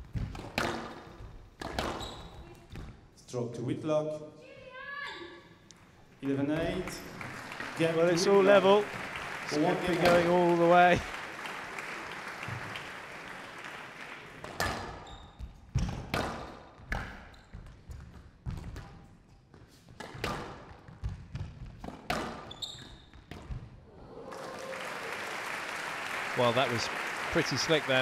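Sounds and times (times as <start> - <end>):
crowd applause: 6.7 - 14.5, 23.9 - 28.0.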